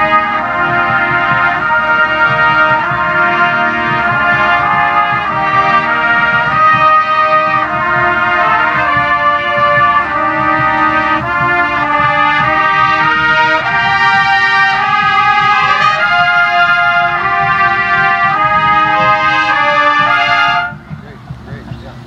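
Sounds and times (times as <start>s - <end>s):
trumpets playing held chords: 0.0s - 22.0s.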